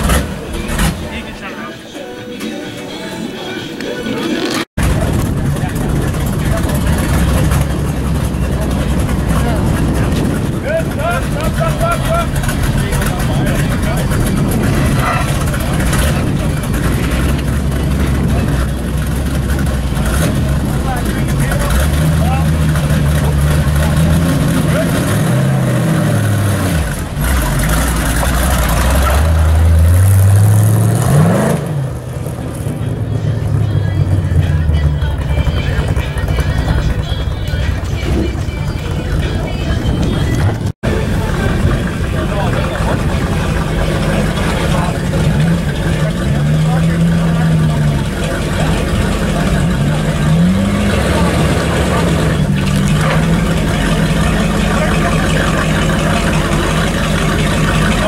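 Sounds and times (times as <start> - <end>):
car engine idling and revving: 0.0 - 1.5, 4.2 - 58.0
people talking: 0.0 - 29.9, 32.6 - 58.0.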